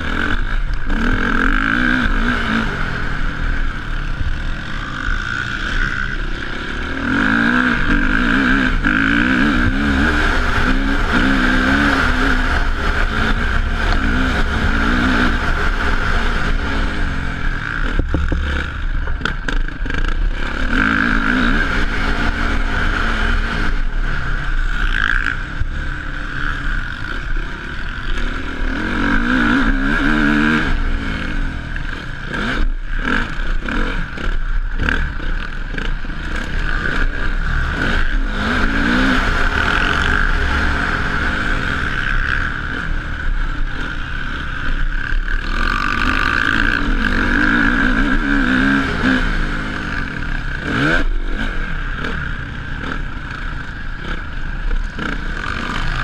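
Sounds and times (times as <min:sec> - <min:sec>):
motocross bike engine revving: 0:00.0 - 0:56.0.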